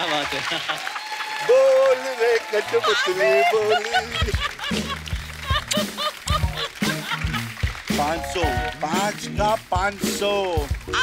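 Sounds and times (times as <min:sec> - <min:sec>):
audience applauding: 0:00.0 - 0:11.0
overlapping voices: 0:00.0 - 0:11.0.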